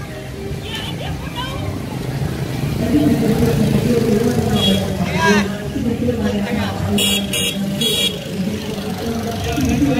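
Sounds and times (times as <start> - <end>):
people's voices: 0.0 - 9.9
motorbike engine passing: 1.1 - 9.9.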